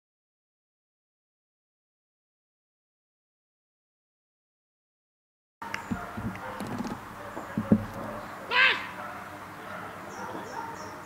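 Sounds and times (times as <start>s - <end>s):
dog barking high-pitched: 5.9s - 11.0s.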